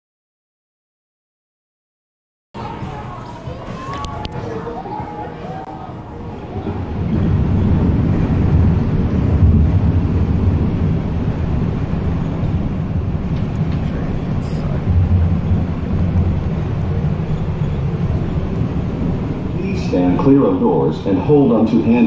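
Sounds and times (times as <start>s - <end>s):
train running low rumble: 2.6s - 22.0s.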